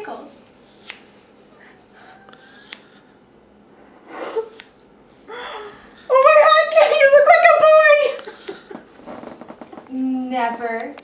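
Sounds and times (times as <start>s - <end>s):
scissors snipping hair: 0.7s - 1.1s, 2.3s - 3.0s, 4.5s - 5.0s, 8.2s - 8.6s
scissor blade click: 2.3s - 2.8s.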